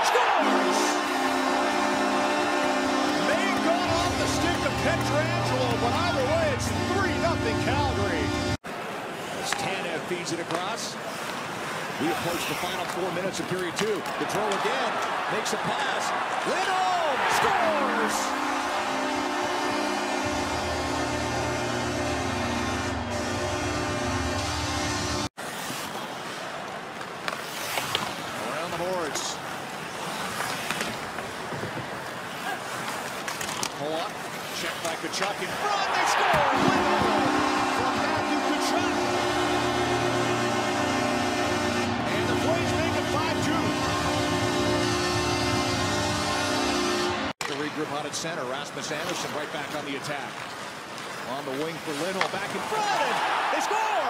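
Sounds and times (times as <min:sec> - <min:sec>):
arena crowd noise: 0:00.0 - 0:23.4, 0:33.8 - 0:54.0.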